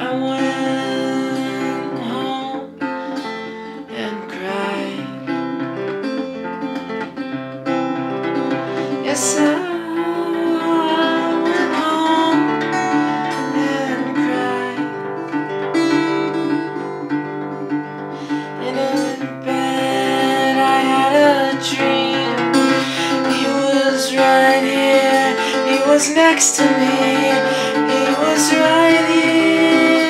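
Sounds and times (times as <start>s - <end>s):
acoustic guitar strummed: 0.0s - 30.0s
man singing: 23.2s - 30.0s.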